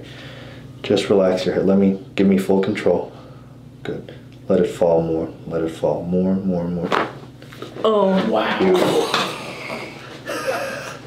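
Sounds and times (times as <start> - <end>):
breath: 0.0 - 0.7.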